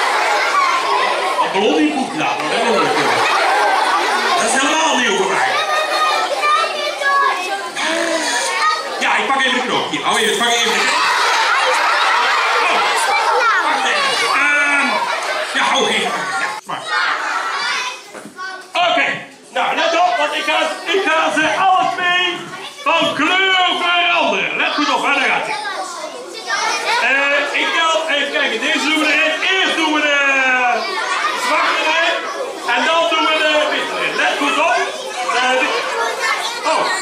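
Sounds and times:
children chattering and calling out: 0.0s - 37.0s.

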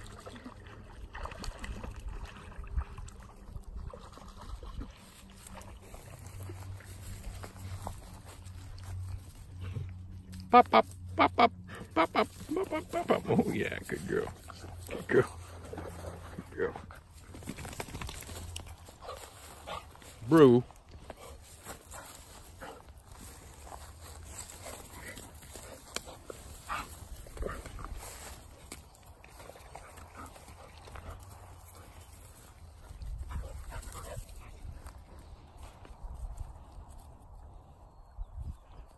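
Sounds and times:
paws scuffling in grass: 3.7s - 38.9s
puppies growling and yipping: 10.6s - 13.5s.

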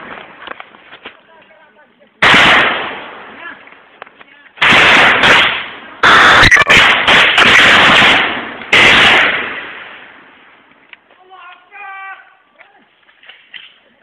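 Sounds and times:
loud gunfire bursts with echo: 2.2s - 3.3s, 4.6s - 10.0s.

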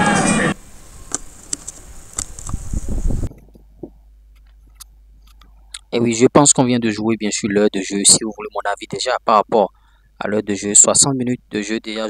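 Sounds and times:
steady low hiss: 0.0s - 12.0s
low thuds: 2.5s - 4.1s.

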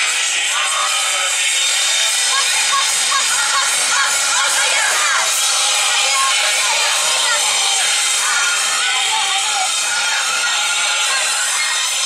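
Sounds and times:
dance music over loudspeakers: 0.0s - 12.0s
dancers shouting calls: 2.2s - 12.0s.

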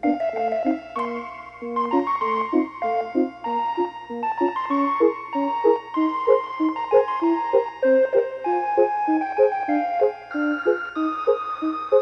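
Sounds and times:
bouncy circus organ music: 0.0s - 12.0s.

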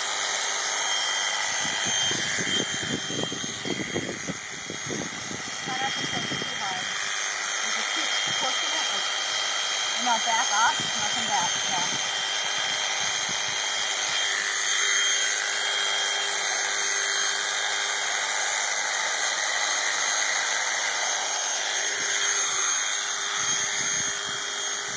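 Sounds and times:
electric shears motor whine: 0.0s - 24.9s.

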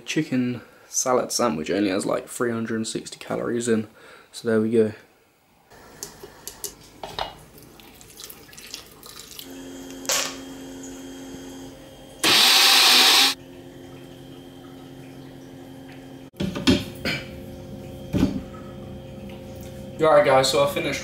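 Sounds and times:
blender rushing noise: 9.4s - 13.4s
low steady hum: 13.4s - 21.0s.

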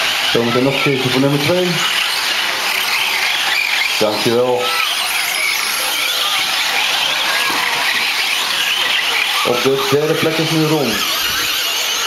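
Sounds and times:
radio-controlled trucks motor whine: 0.0s - 12.0s.

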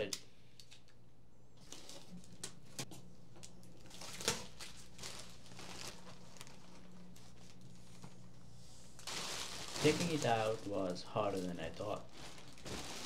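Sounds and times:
low steady hum: 0.0s - 13.0s
plastic wrap handled: 3.4s - 8.2s, 8.9s - 13.0s.

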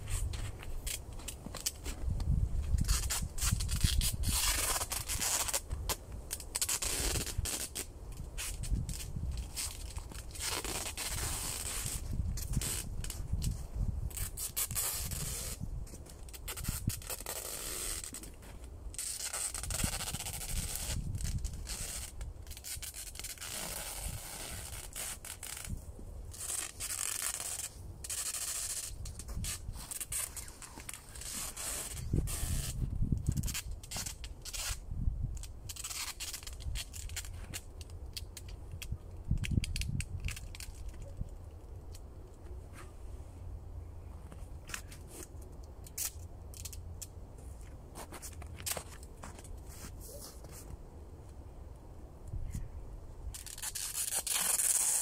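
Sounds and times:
tape pulled off roll rasping: 0.0s - 42.9s, 44.3s - 50.8s, 53.3s - 55.0s.

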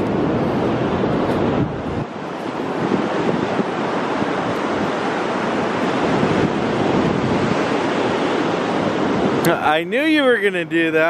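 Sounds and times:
ocean surf on beach: 0.0s - 11.0s.

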